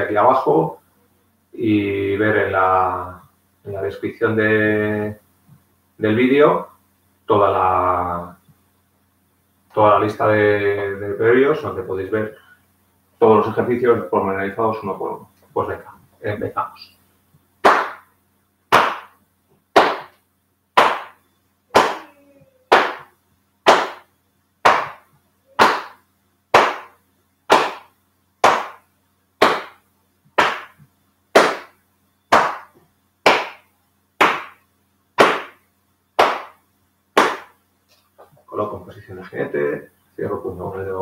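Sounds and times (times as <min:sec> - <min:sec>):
hands slapping body: 0:17.6 - 0:18.1, 0:18.7 - 0:19.2, 0:19.8 - 0:20.2, 0:20.8 - 0:22.1, 0:22.7 - 0:24.0, 0:24.6 - 0:25.0, 0:25.6 - 0:28.8, 0:29.4 - 0:29.8, 0:30.4 - 0:33.6, 0:34.2 - 0:34.6, 0:35.2 - 0:35.6, 0:36.2 - 0:36.6, 0:37.2 - 0:37.6.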